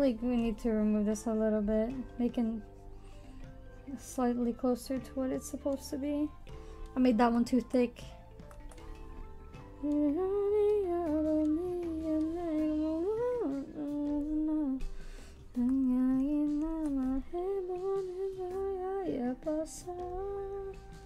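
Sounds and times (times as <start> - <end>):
woman humming a slow tune: 9.8 - 15.0.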